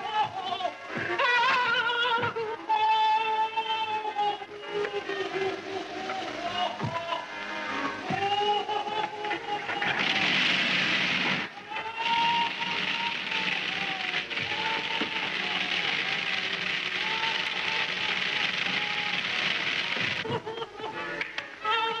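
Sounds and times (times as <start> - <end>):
background music: 0.0 - 22.0.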